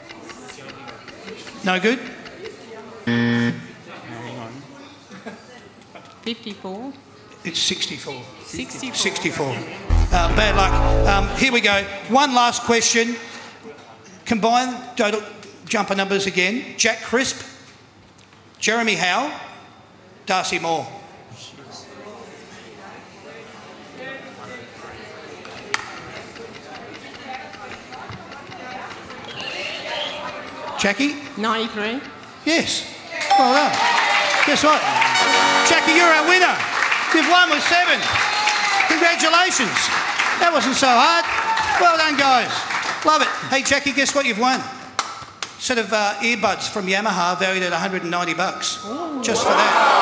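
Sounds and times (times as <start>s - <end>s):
murmur of voices: 0.0s - 6.1s, 20.9s - 34.0s
quiz buzzer: 3.1s - 3.7s, 9.9s - 11.4s.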